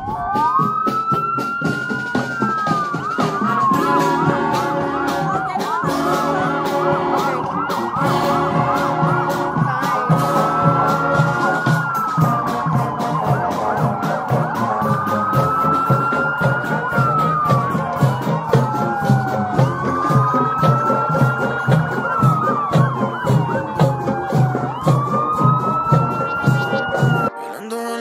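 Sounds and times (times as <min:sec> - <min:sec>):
marching band brass and drums: 0:00.0 - 0:27.4
siren yelping and wailing: 0:00.0 - 0:27.4.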